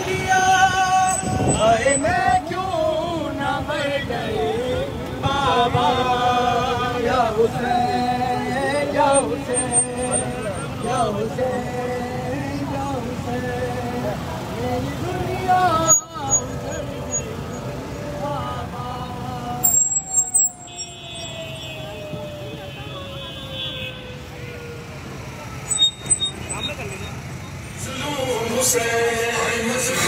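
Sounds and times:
motorcycle and vehicle engines: 0.0s - 30.0s.

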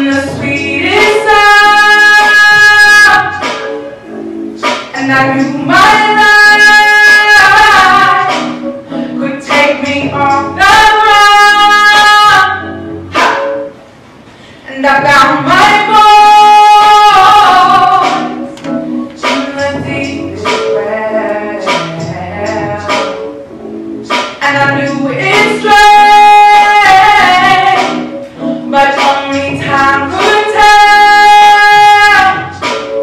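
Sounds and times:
woman singing into a microphone: 0.0s - 3.8s, 4.9s - 13.6s, 14.6s - 23.3s, 24.4s - 33.0s.

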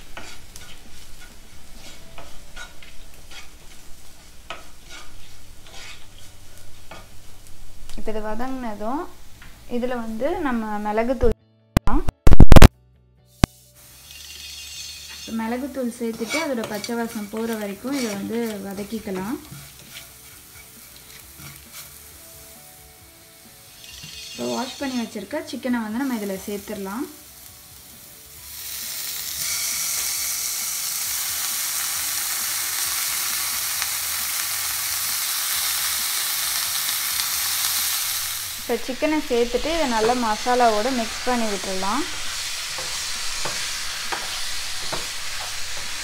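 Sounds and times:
onions frying in oil: 0.0s - 10.7s, 13.4s - 46.0s.

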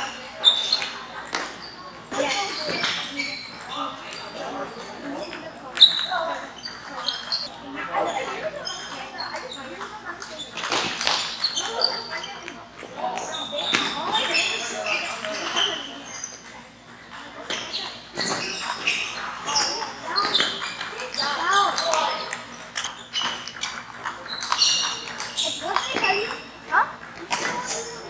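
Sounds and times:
hubbub of people talking: 0.0s - 28.0s
table tennis ball clicking: 18.3s - 26.4s.

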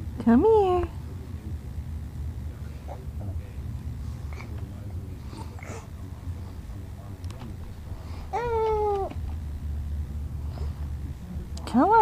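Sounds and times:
steady low hum: 0.0s - 12.0s
baby grunting: 8.3s - 9.2s.

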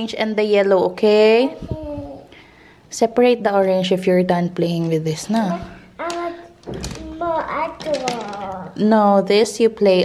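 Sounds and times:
toddler speaking: 1.5s - 2.3s, 6.0s - 8.8s.

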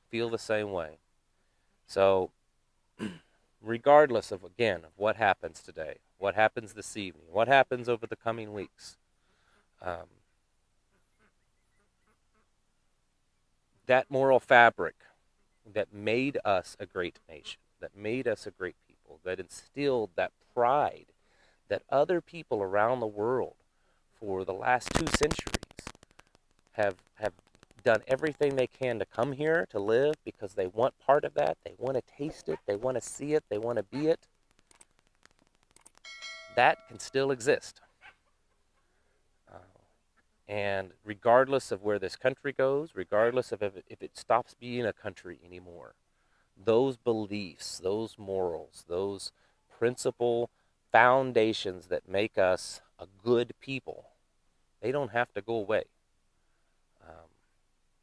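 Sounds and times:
man speaking: 0.0s - 1.0s, 1.9s - 2.3s, 3.6s - 9.0s, 9.8s - 10.2s, 13.8s - 15.1s, 15.7s - 21.0s, 21.7s - 23.6s, 24.2s - 25.9s, 26.8s - 34.2s, 36.5s - 37.8s, 39.5s - 39.8s, 40.5s - 45.9s, 46.6s - 54.0s, 54.8s - 55.9s, 57.0s - 57.3s
person saying uh: 31.4s - 34.2s.

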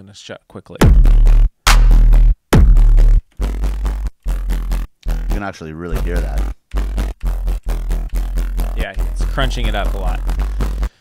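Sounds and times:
distorted dubstep bass synth: 0.8s - 11.0s.

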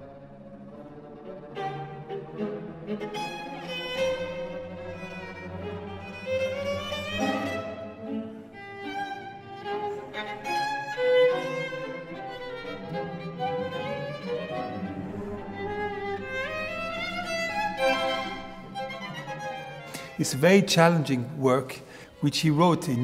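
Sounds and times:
string ensemble playing classical music: 0.0s - 23.0s.

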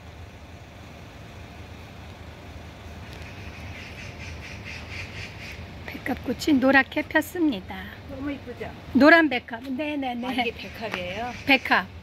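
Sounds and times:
low outdoor rumble: 0.0s - 12.0s
bird calling rapidly: 3.1s - 5.7s, 10.2s - 11.9s.

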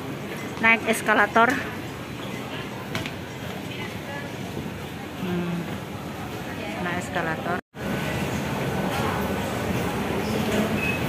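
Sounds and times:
shopping centre background noise: 0.0s - 11.0s.

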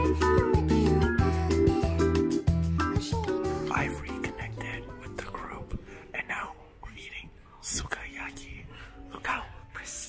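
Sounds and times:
faint background music: 0.0s - 10.0s
person whispering: 3.6s - 10.0s.

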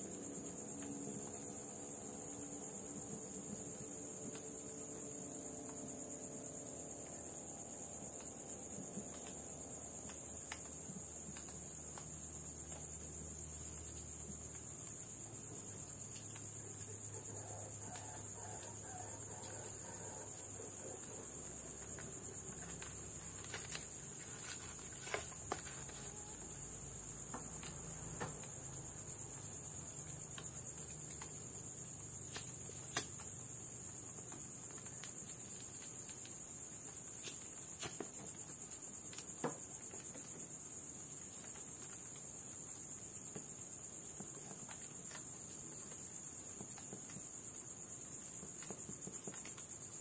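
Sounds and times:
insect chirring: 0.0s - 50.0s
wood fire embers crackling: 0.1s - 50.0s.

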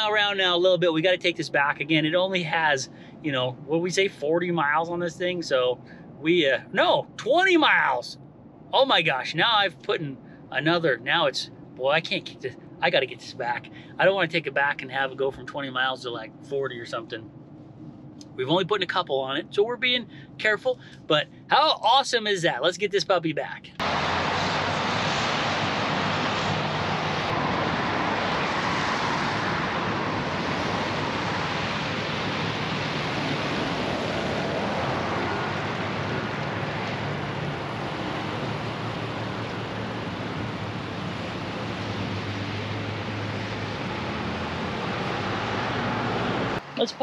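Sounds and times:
steady rushing noise: 23.5s - 47.0s.

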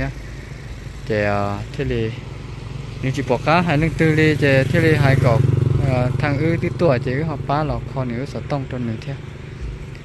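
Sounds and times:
people talking: 1.1s - 2.2s, 3.0s - 9.2s.

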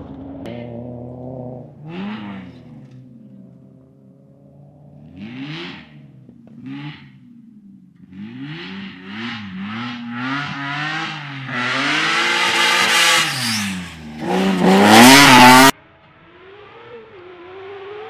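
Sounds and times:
rally car engine revving: 0.0s - 18.0s.

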